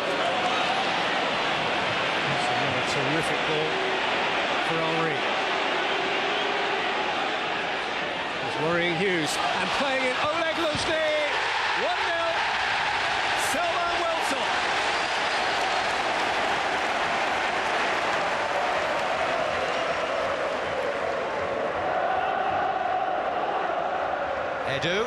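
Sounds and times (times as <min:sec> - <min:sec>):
applause: 0:00.0 - 0:23.8
crowd cheering: 0:00.0 - 0:25.0.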